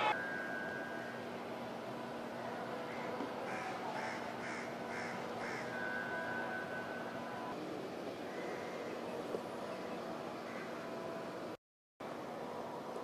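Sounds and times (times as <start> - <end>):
steady background hum: 0.0 - 13.0.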